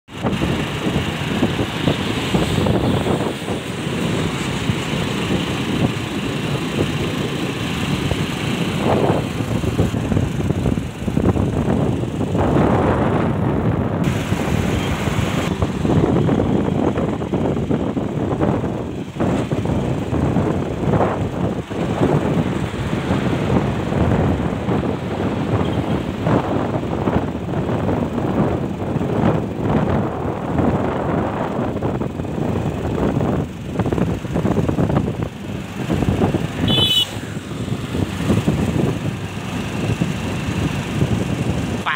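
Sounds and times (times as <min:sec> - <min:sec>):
road noise rushing: 0:00.1 - 0:41.9
tyre and engine rumble: 0:00.1 - 0:41.9
wind buffeting microphone: 0:00.1 - 0:41.9.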